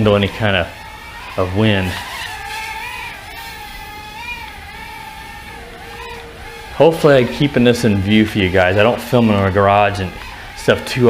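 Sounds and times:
drone motors whining: 0.0s - 11.0s.

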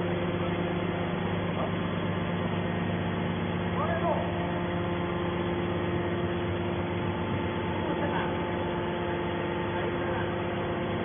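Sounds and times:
hydraulic baler humming: 0.0s - 11.0s.

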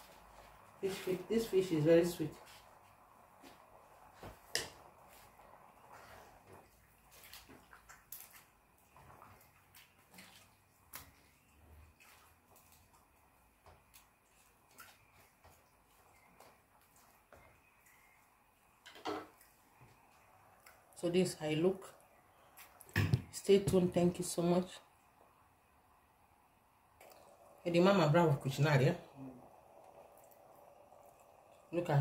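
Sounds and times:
pot simmering with ticks and pops: 2.4s - 21.0s, 24.9s - 27.7s, 29.4s - 31.9s.

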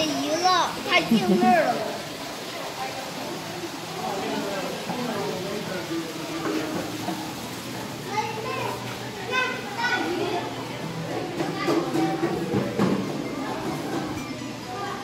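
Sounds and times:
children's voices: 0.0s - 2.1s, 8.0s - 12.6s
background chatter of people: 0.0s - 15.0s.

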